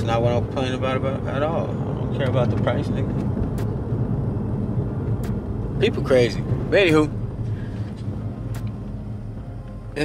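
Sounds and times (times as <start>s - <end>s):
car engine and road hum: 0.0s - 10.0s.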